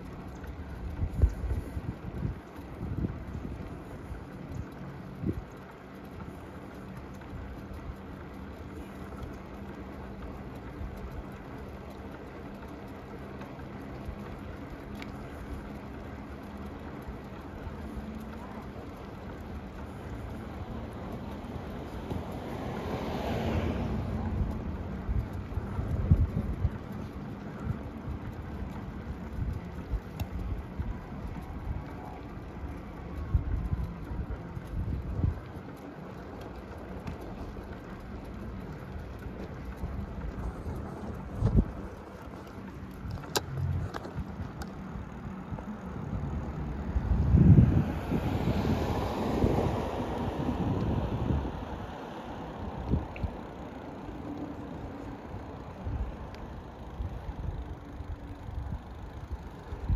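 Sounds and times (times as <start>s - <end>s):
motor vehicle passing: 0.0s - 59.9s
wind buffeting microphone: 0.0s - 59.9s
bicycle bumps: 24.1s - 47.9s.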